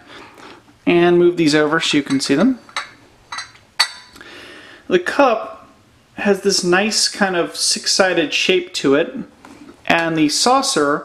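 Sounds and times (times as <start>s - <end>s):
glass scraping: 1.8s - 4.2s
glass cup clinking on saucer: 2.0s - 4.2s.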